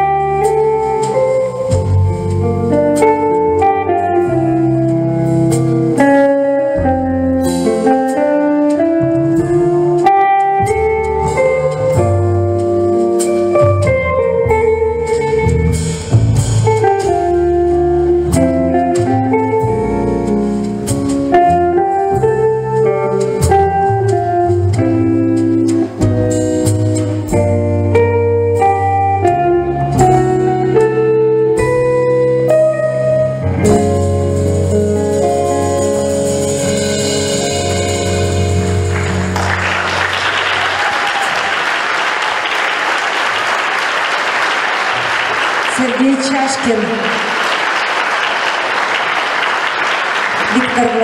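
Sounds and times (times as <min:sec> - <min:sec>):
low bass notes: 0:00.0 - 0:40.9
electric guitar melody: 0:00.0 - 0:41.2.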